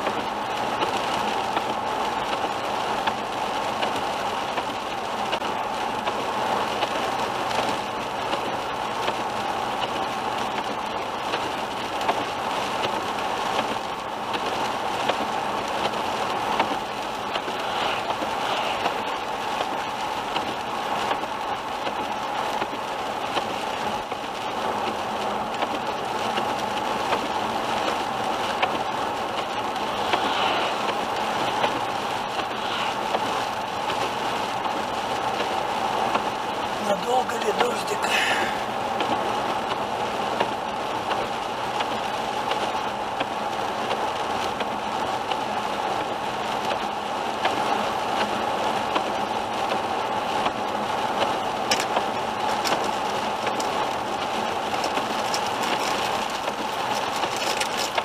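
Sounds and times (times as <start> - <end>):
rain on windscreen: 0.0 - 58.0
tyres hissing on wet road: 0.0 - 58.0.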